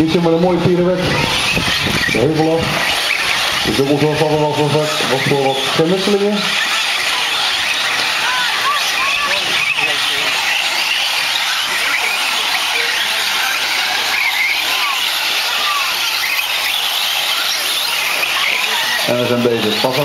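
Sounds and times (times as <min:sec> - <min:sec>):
toy truck motors whining: 0:00.0 - 0:20.0.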